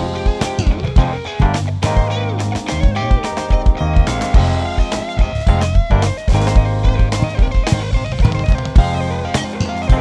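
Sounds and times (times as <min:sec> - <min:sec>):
bass guitar: 0:00.0 - 0:10.0
drum kit: 0:00.0 - 0:10.0
electric guitar: 0:00.0 - 0:10.0.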